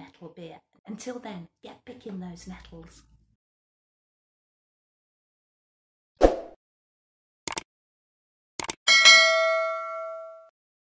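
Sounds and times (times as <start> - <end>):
bell ding: 8.9 - 10.5.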